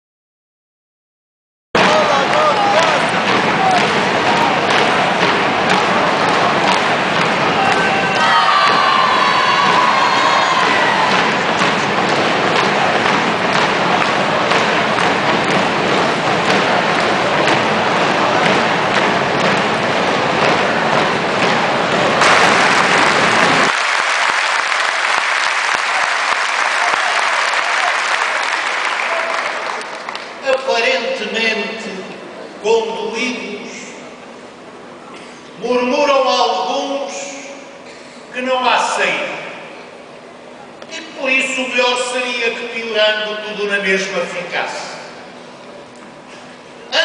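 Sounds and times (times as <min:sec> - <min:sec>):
crowd cheering and shouting: 0:01.8 - 0:30.8
crowd clapping: 0:01.8 - 0:31.2.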